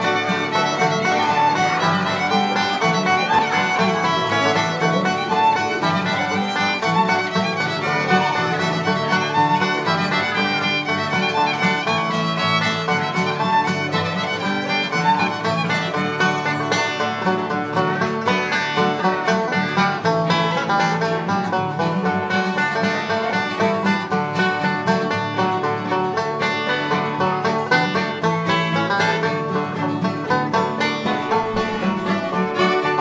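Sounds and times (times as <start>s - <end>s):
acoustic guitars strumming rhythm: 0.0s - 33.0s
banjo: 0.0s - 33.0s
fiddle playing tune: 0.0s - 33.0s.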